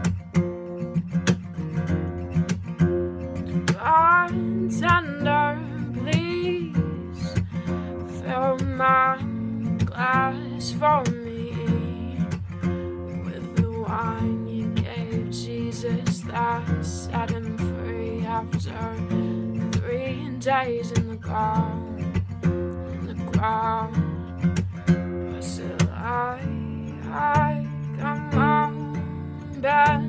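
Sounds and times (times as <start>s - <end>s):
acoustic guitar strummed: 0.0s - 30.0s
woman singing: 3.3s - 30.0s.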